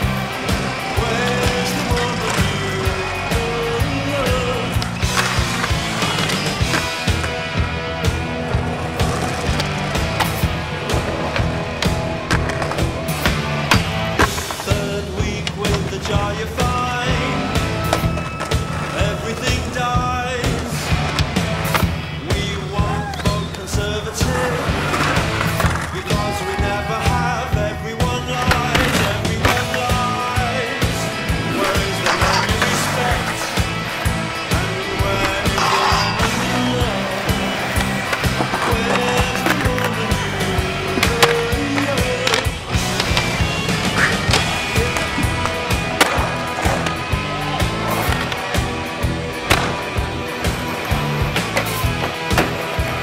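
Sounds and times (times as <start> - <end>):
music playing: 0.0 - 53.0
skateboard wheels rolling on concrete: 0.0 - 53.0
skateboard striking ground: 8.1 - 16.6, 35.0 - 47.0, 49.4 - 53.0
skateboard popping and landing: 40.9 - 47.0, 49.5 - 49.9, 51.4 - 52.8.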